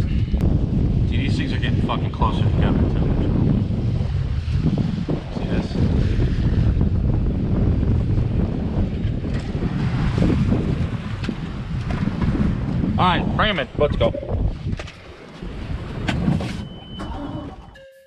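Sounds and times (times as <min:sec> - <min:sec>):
wind buffeting microphone: 0:00.0 - 0:17.8
waves washing against boat hull: 0:03.6 - 0:17.6.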